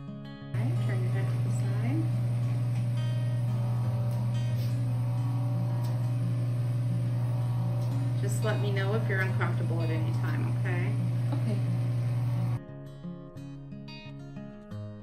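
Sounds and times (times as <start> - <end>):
soft guitar music: 0.0 - 15.0
vacuum pump humming: 0.6 - 12.6.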